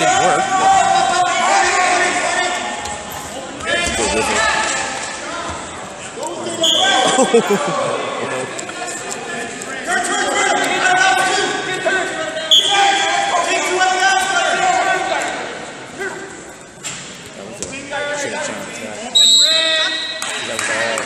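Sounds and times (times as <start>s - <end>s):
spectators talking and laughing: 0.0s - 21.0s.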